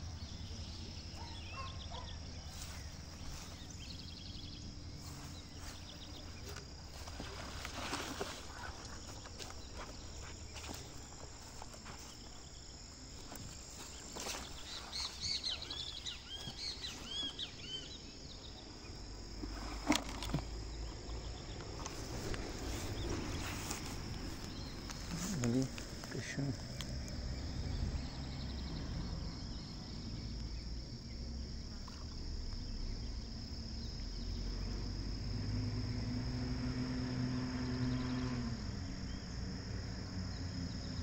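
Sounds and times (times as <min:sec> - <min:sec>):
bird chirping: 0:00.0 - 0:19.4
high insect drone: 0:00.0 - 0:41.0
rustling of weeds: 0:02.4 - 0:04.1, 0:04.9 - 0:17.5, 0:19.2 - 0:27.2.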